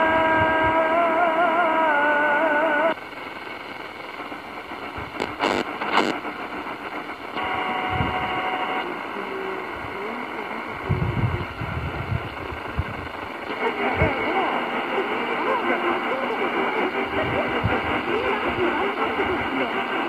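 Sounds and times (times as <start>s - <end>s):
radio static and hiss: 0.0s - 20.0s
distant radio speech: 5.0s - 6.2s, 7.4s - 20.0s.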